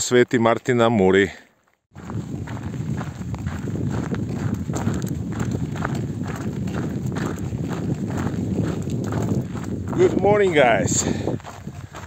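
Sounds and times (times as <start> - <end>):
footsteps on gravel: 1.2 - 12.0.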